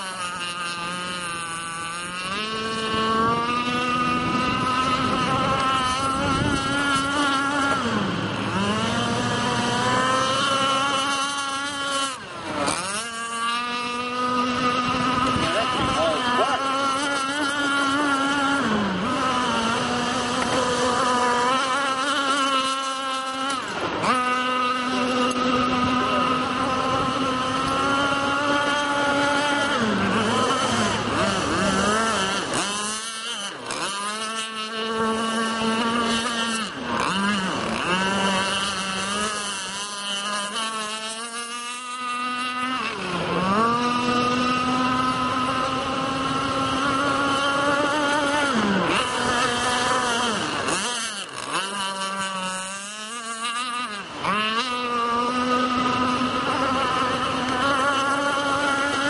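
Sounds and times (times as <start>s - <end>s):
model speedboat engine screaming: 0.0s - 59.0s.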